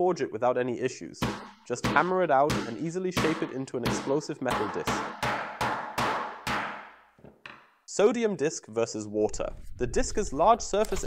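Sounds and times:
hammer striking metal: 0:01.2 - 0:07.6.

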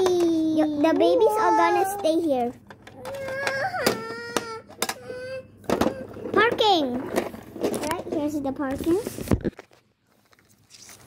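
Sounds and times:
rustling and scraping: 0:05.8 - 0:11.0.

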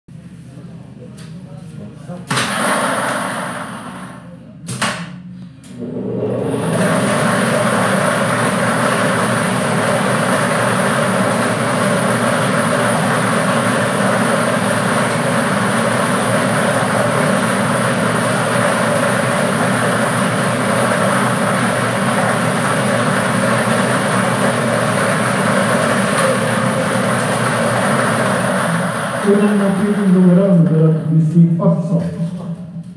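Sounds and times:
blower running: 0:05.6 - 0:31.9.

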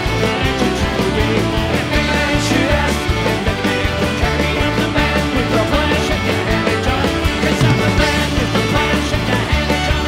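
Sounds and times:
accordion: 0:00.0 - 0:10.0
bass: 0:00.0 - 0:10.0
guitars: 0:00.0 - 0:10.0
steady drum beat: 0:00.0 - 0:10.0.

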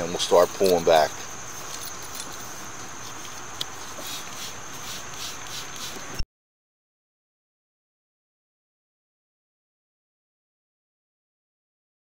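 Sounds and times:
insects chirping: 0:00.0 - 0:06.2
low background hiss: 0:00.0 - 0:06.2.

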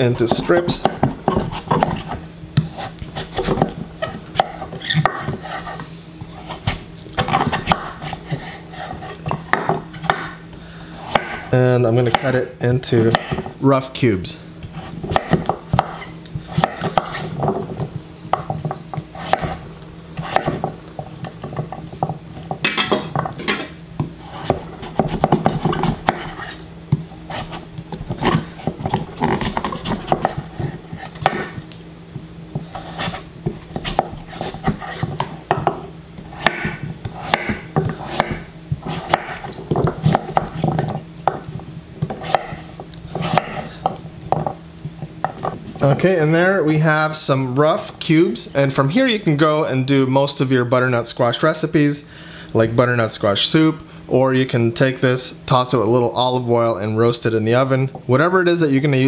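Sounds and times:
knife cutting squash on wooden board: 0:00.2 - 0:10.3, 0:14.6 - 0:19.6, 0:20.2 - 0:21.8, 0:24.0 - 0:31.6, 0:32.5 - 0:44.4.

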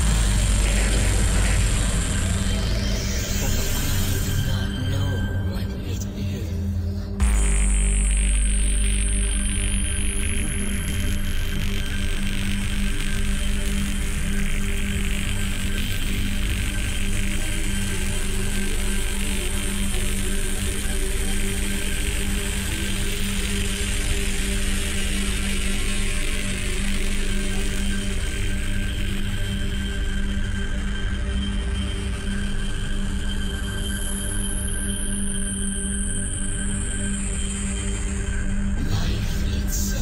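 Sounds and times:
droning electronic tones: 0:00.0 - 0:40.0.

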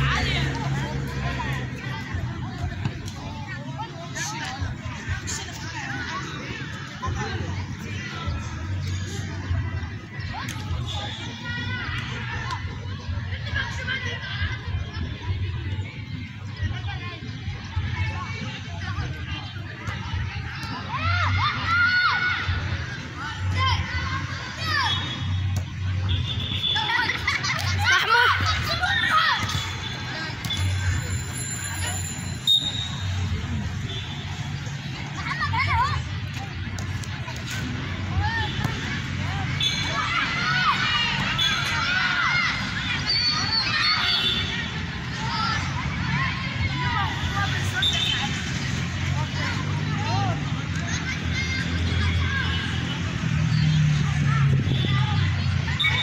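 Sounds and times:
children shouting: 0:19.9 - 0:25.5, 0:26.6 - 0:32.3, 0:34.3 - 0:36.5, 0:37.3 - 0:56.0.

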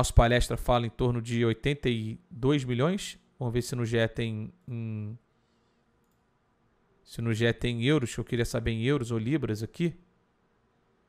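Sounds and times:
computer mouse clicks: 0:06.0 - 0:06.3.

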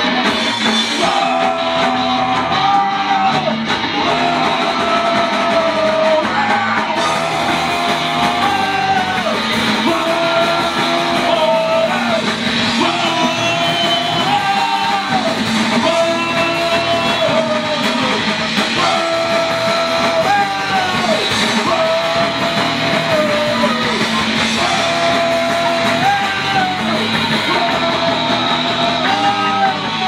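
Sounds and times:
drums: 0:00.0 - 0:30.0
electric guitars: 0:00.0 - 0:30.0
person singing into microphone: 0:00.9 - 0:30.0.

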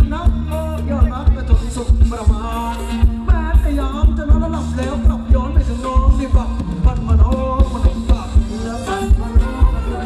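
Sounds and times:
dance band playing: 0:00.0 - 0:10.0
heavy bass drum beat: 0:00.0 - 0:10.0.

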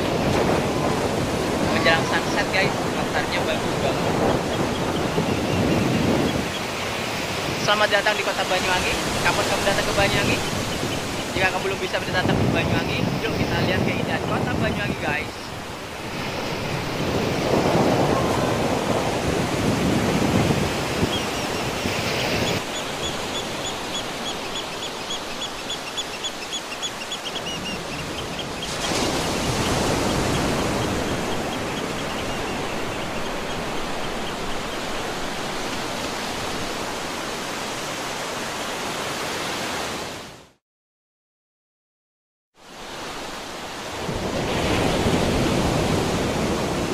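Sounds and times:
surf breaking on beach: 0:00.0 - 0:25.8, 0:27.5 - 0:40.2, 0:43.0 - 0:46.9.

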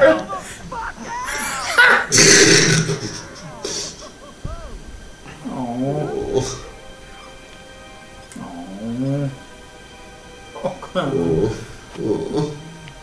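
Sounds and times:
soft background music: 0:00.0 - 0:13.0.

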